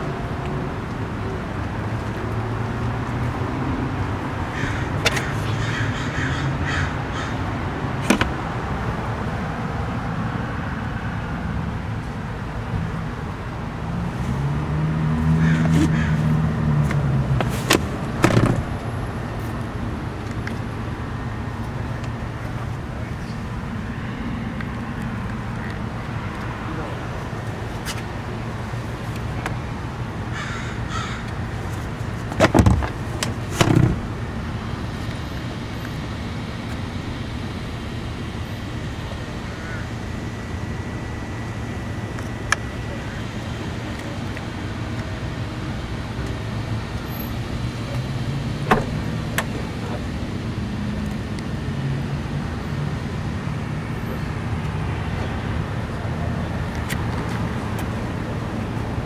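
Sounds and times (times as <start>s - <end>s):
steady background noise: 0.0s - 59.0s.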